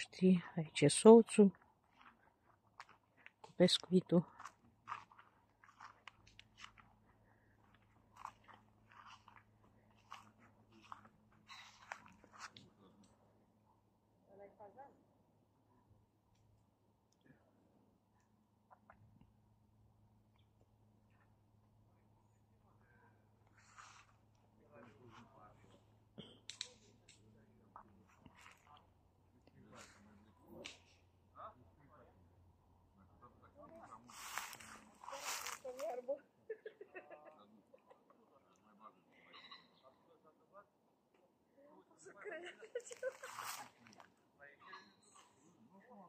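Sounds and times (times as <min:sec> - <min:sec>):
low steady hum: 0:00.0 - 0:36.6.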